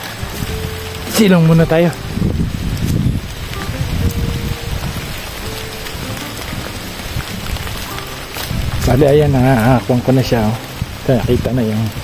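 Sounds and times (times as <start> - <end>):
low rumble on microphone: 0.0 - 12.0
rain pattering: 0.0 - 12.0.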